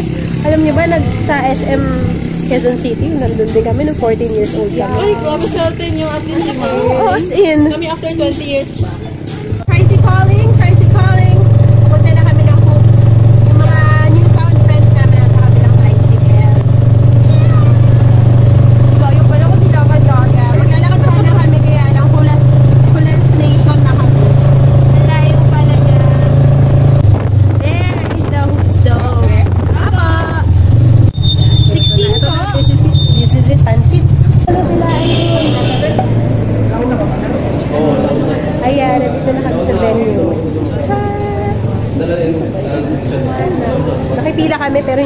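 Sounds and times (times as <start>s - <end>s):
women's voices: 0.0s - 16.7s, 18.8s - 26.5s, 27.5s - 30.5s, 31.6s - 36.2s, 38.6s - 41.7s, 44.2s - 45.0s
motorcycle engine humming: 0.0s - 45.0s.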